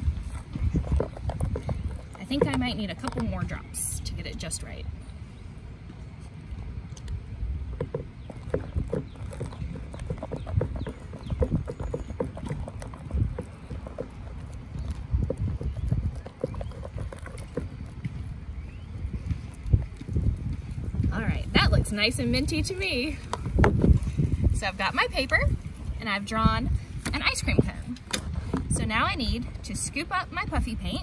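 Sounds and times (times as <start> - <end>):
spatula stirring paint in bowl: 0.0 - 3.8, 7.6 - 18.3.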